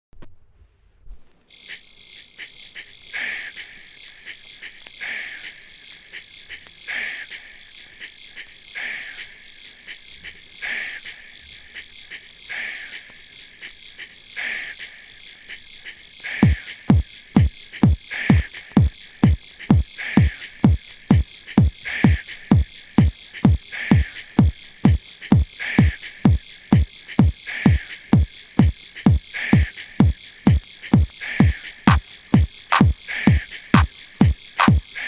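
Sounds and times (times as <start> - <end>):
fast ticking hi-hats: 1.5 - 35.0.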